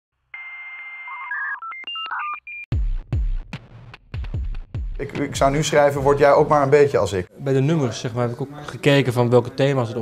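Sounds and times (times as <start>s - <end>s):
high telephone tone: 0.3s - 2.7s.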